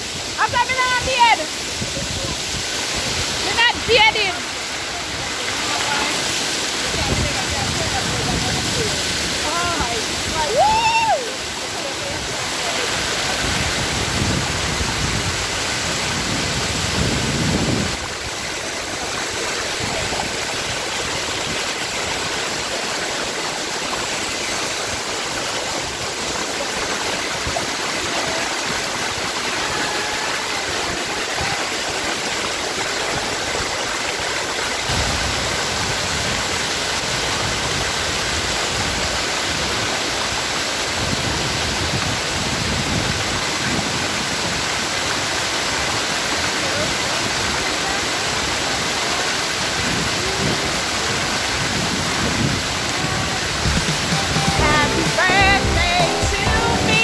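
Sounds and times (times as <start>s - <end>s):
water rushing over rocks: 0.0s - 57.0s.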